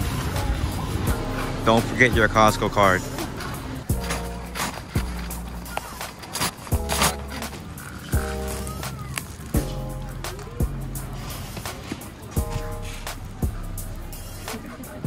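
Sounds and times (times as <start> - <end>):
background music with beat: 0.0 - 15.0.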